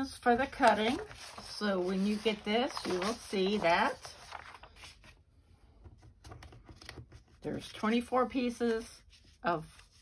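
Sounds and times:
paper rustling: 0.2 - 5.2.

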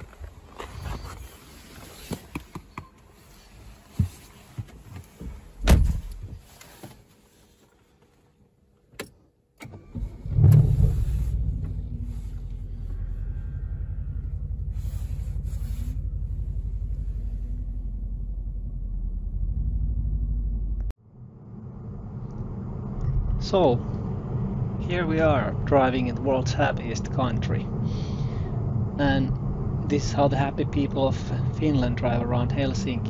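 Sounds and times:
road noise of car driving: 0.0 - 33.0
car engine starting and idling: 9.0 - 33.0.

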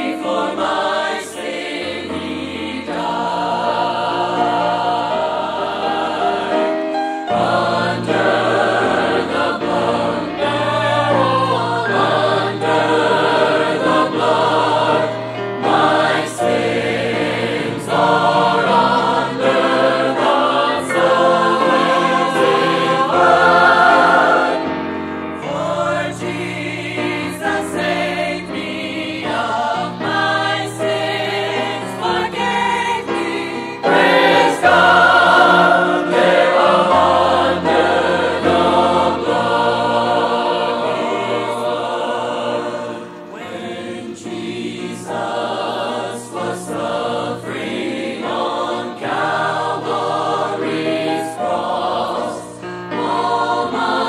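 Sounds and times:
mixed choir singing a hymn: 0.0 - 54.0
piano accompaniment: 0.0 - 54.0.

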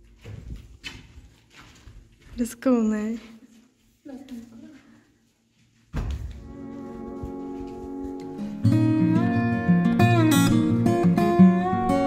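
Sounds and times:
footsteps on gritty floor: 0.0 - 8.8
sharp scuff: 5.9 - 6.4.

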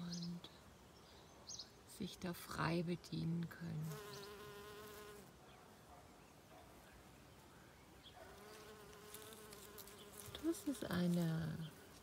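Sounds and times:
bees buzzing: 3.8 - 5.3, 8.3 - 12.0.

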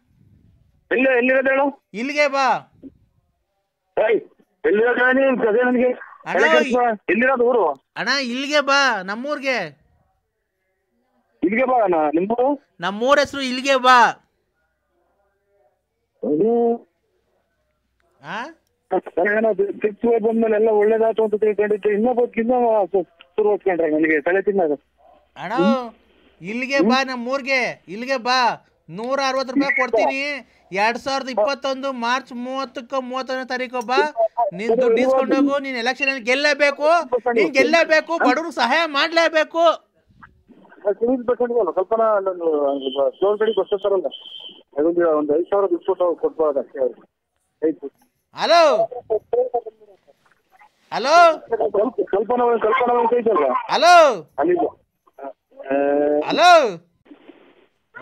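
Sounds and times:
person talking radio-like: 5.2 - 6.8, 25.4 - 26.0, 29.4 - 30.4, 33.8 - 36.2, 37.0 - 38.6, 48.5 - 56.5
person voicing held syllable: 5.9 - 6.8, 25.4 - 25.9, 29.5 - 30.4, 33.8 - 35.5, 48.4 - 56.8.

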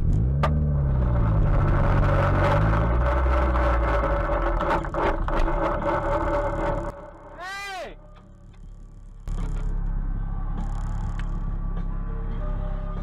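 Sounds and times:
car engine from inside cabin: 0.0 - 7.4.

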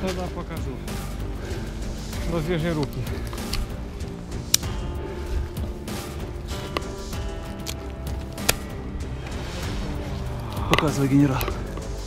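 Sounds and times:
sharp clicks: 2.7 - 4.8, 6.5 - 8.8.

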